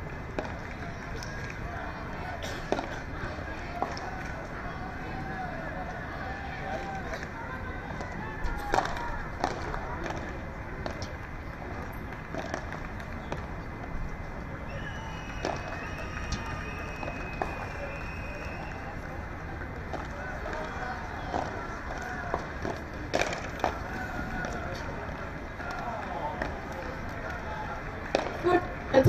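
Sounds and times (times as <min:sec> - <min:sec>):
crowd and venue noise: 0:00.0 - 0:29.0
ball struck by paddles: 0:08.7 - 0:11.0, 0:21.3 - 0:23.8.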